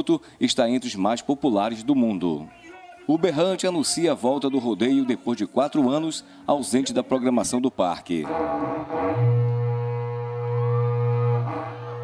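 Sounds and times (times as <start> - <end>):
ox horn blown in a low note: 8.2 - 12.0.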